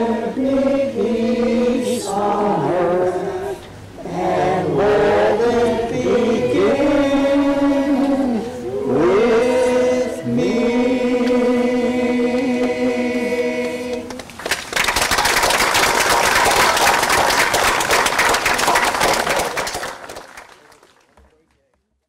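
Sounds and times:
person singing sustained notes: 0.0s - 14.0s
applause: 14.1s - 22.0s.

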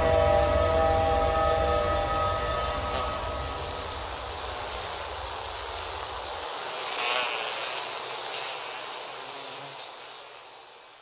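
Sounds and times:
hissing noise wash: 0.0s - 11.0s.

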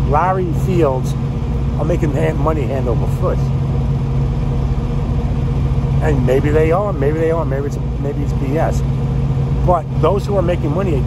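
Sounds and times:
diesel engine droning: 0.0s - 11.0s.

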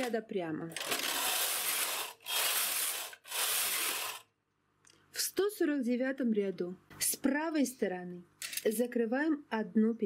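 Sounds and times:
knitting machine carriage whirring: 0.8s - 4.3s.

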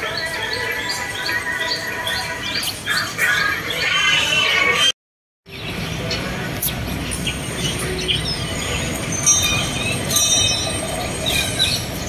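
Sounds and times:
bird chirping: 0.0s - 4.8s, 5.5s - 12.0s.

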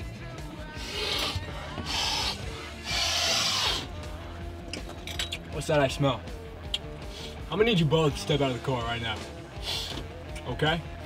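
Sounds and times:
quiet background music: 0.0s - 11.0s
person sniffing: 9.6s - 10.0s.

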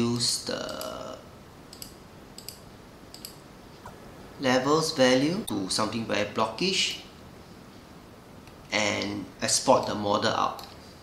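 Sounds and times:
low room hiss: 0.0s - 11.0s
computer mouse clicks: 1.7s - 3.4s.

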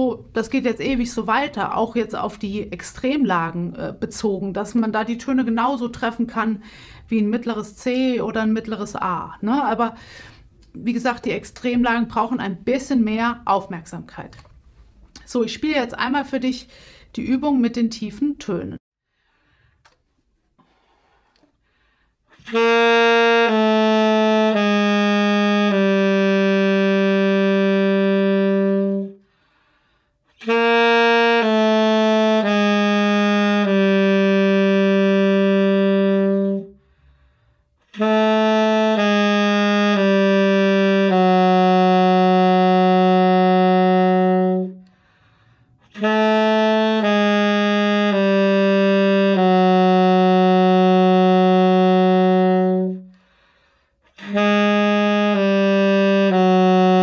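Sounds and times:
alto saxophone playing low notes: 22.3s - 29.3s, 30.4s - 37.0s, 37.8s - 53.4s, 54.1s - 57.0s.

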